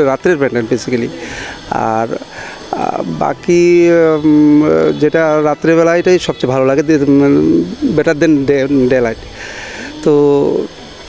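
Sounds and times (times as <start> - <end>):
man speaking: 0.0 - 9.2, 9.9 - 10.7.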